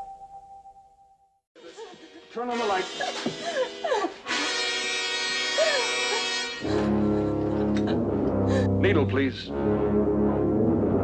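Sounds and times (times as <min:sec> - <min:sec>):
woman crying out: 0:05.6 - 0:06.4
dramatic orchestral music: 0:06.3 - 0:11.0.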